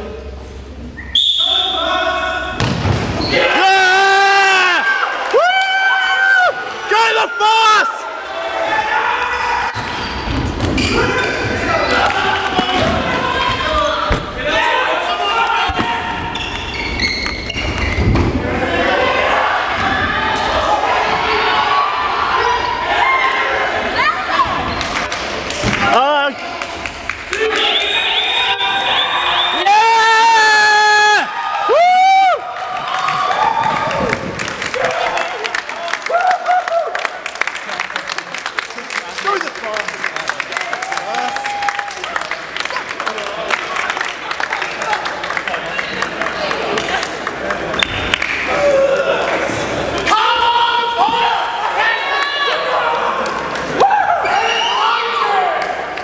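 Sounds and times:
players shouting: 0:10.8 - 0:16.7
ball thudding on wooden court: 0:14.1 - 0:14.4.

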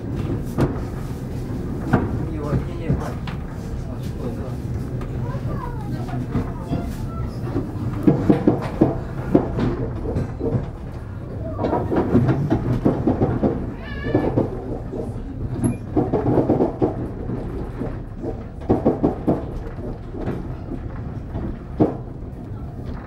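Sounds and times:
train rumbling inside carriage: 0:00.0 - 0:23.0
wheel and car body rattles: 0:00.0 - 0:23.0.

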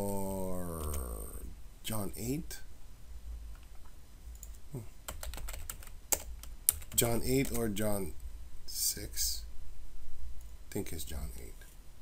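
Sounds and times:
typing on keyboard: 0:04.4 - 0:07.6.

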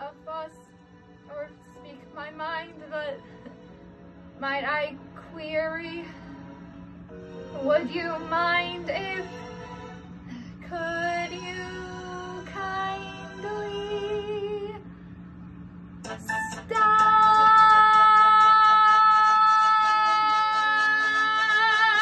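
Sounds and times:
woman singing: 0:00.0 - 0:03.4, 0:04.4 - 0:06.3, 0:07.5 - 0:09.4, 0:10.6 - 0:14.8, 0:16.2 - 0:22.0.

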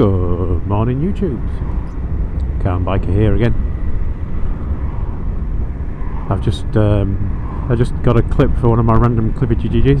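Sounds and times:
motorcycle engine and wind: 0:00.0 - 0:10.0.

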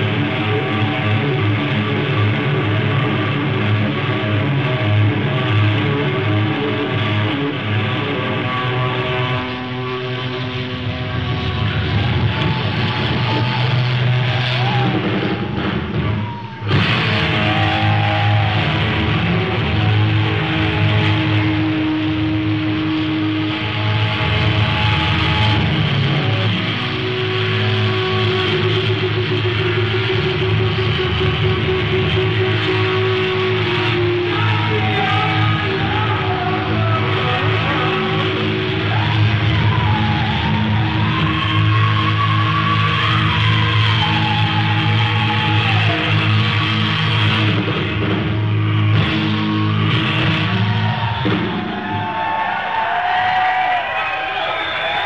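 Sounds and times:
live hard rock band: 0:00.0 - 0:52.7
distorted electric guitar: 0:00.0 - 0:55.0.

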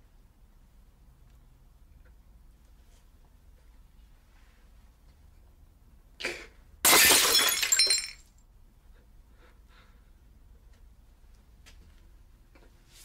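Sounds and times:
glass bottle shattering on floor: 0:06.8 - 0:08.3.

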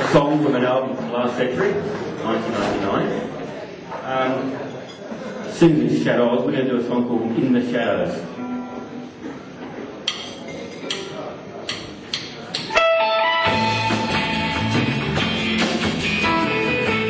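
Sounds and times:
surf rock band playing: 0:12.7 - 0:17.0.

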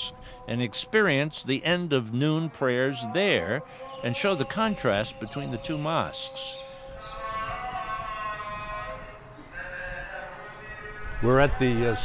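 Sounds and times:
man chanting prayer: 0:00.0 - 0:12.0.

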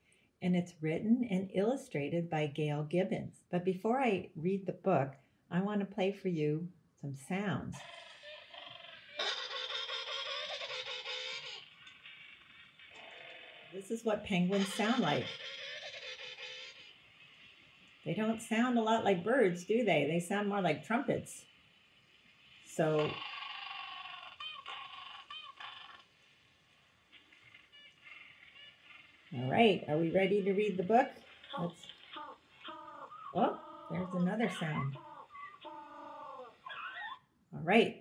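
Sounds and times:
penguin calls through a speaker: 0:13.0 - 0:17.1, 0:27.6 - 0:37.2.

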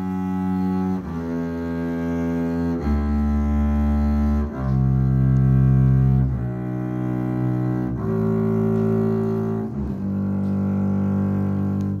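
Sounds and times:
bowed double bass notes: 0:00.0 - 0:12.0.

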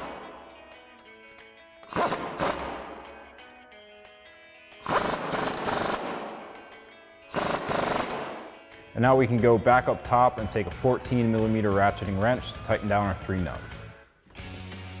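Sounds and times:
impact wrench hammering: 0:00.0 - 0:00.5, 0:01.8 - 0:03.2, 0:04.8 - 0:06.6, 0:07.3 - 0:08.6.

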